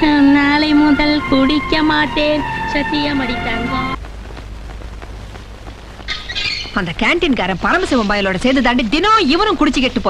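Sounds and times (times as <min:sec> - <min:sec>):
low hum: 0:00.0 - 0:08.9
noise hiss: 0:00.0 - 0:10.0
crackling ticks: 0:04.0 - 0:08.2.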